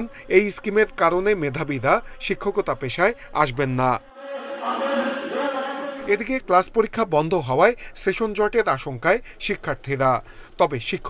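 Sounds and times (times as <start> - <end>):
man speaking: 0.0 - 4.0, 4.7 - 11.0
room noise: 3.8 - 10.2.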